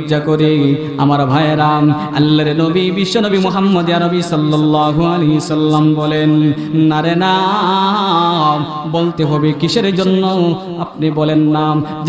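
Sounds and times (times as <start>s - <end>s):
man chanting a sermon: 0.0s - 12.0s.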